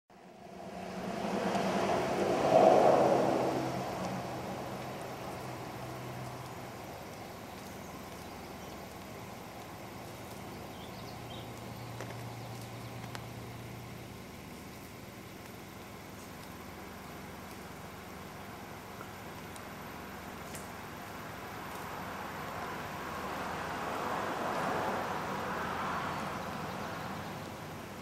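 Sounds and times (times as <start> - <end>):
vehicle engine passing by: 0.2 - 14.9, 21.5 - 28.0.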